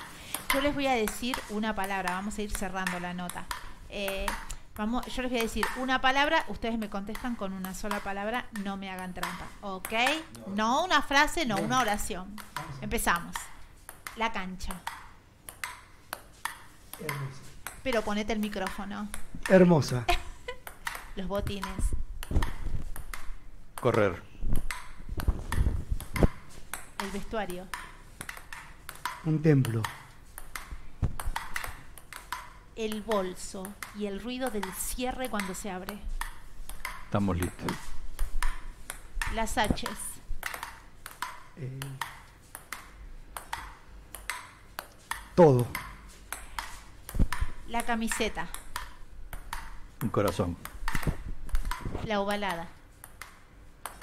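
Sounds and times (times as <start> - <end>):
ping-pong ball bouncing: 0.0 - 54.0
man talking: 10.3 - 10.7, 11.5 - 11.8, 12.6 - 12.9, 17.0 - 17.5, 19.4 - 20.1, 23.8 - 24.3, 29.2 - 30.0, 37.1 - 37.8, 41.6 - 42.0, 45.4 - 45.8, 50.0 - 50.7.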